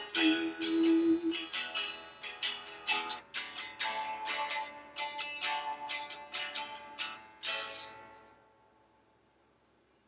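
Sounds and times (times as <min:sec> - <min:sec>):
electric guitar strums: 0:00.0 - 0:08.3.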